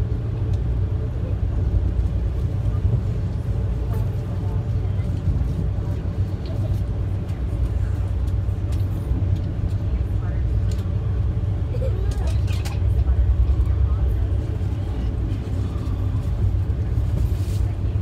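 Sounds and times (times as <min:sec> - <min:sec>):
train car rumbling on rails: 0:00.0 - 0:18.0.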